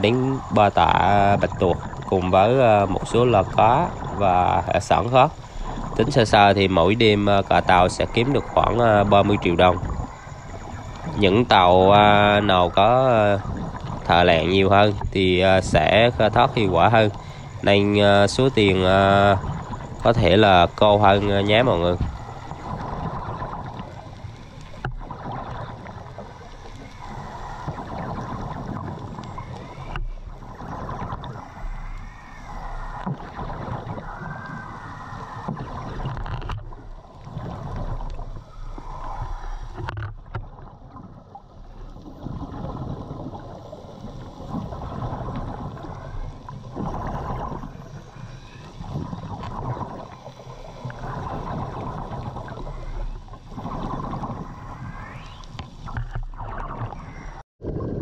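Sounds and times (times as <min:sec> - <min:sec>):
steady low hum: 0:00.0 - 0:56.4
air bubbles gurgling: 0:00.0 - 0:58.0
diver breathing underwater: 0:05.3 - 0:06.2, 0:17.1 - 0:20.0, 0:21.9 - 0:40.0.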